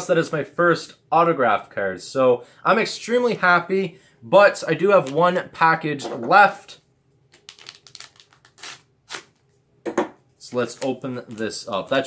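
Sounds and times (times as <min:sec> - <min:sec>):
plastic wrapper rustling: 0:07.3 - 0:09.5.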